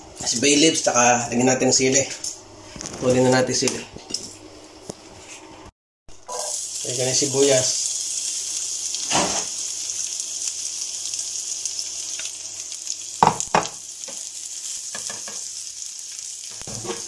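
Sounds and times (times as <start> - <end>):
onions sizzling in oil: 6.1 - 17.0.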